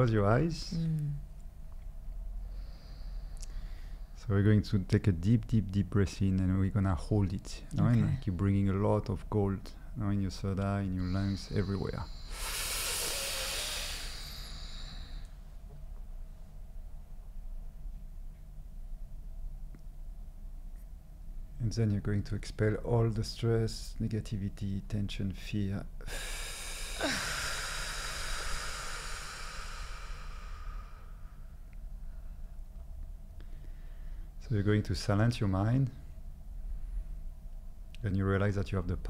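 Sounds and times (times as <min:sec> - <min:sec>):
deep in-breath hiss: 0:02.4 - 0:04.3, 0:11.0 - 0:15.5, 0:26.0 - 0:32.5
person exhaling with a sigh: 0:11.0 - 0:15.3, 0:26.1 - 0:31.4.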